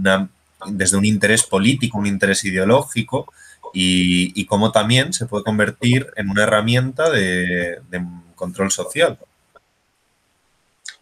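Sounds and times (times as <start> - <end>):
man speaking: 0.0 - 9.2
person speaking: 0.0 - 9.2.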